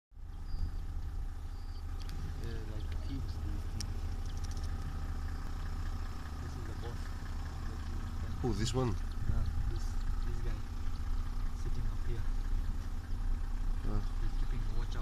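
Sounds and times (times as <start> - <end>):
vehicle engine idling: 0.1 - 15.0.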